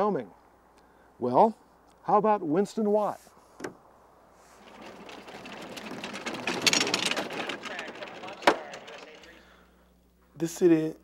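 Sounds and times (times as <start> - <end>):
bobsled runners scraping on ice: 4.4 - 9.6.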